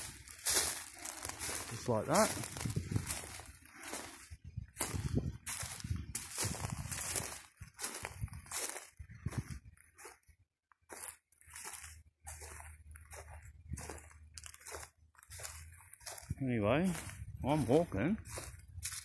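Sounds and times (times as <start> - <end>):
footsteps through long grass: 0.0 - 19.0.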